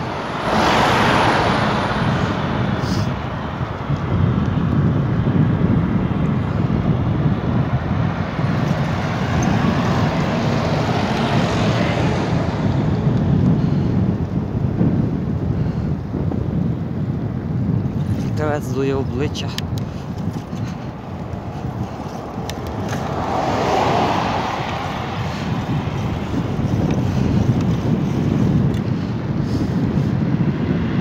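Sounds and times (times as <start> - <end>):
road traffic passing: 0.0 - 31.0
wind buffeting microphone: 0.0 - 31.0.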